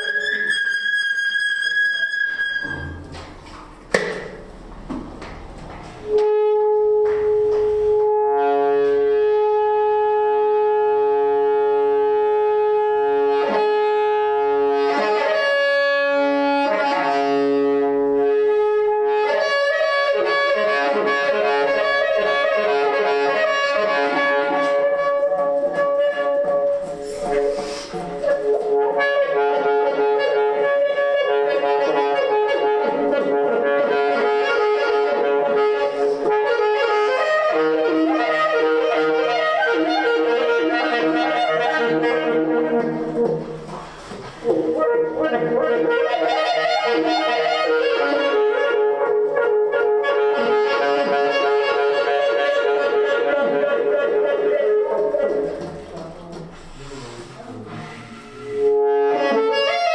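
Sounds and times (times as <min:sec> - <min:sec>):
saxophone playing: 0:00.0 - 0:03.2, 0:06.0 - 0:59.9
breathy hiss: 0:56.5 - 0:58.8.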